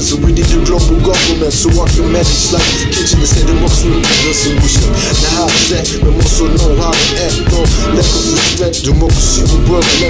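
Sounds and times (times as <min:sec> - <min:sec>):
hip hop beat: 0:00.0 - 0:10.0
man rapping: 0:00.0 - 0:10.0.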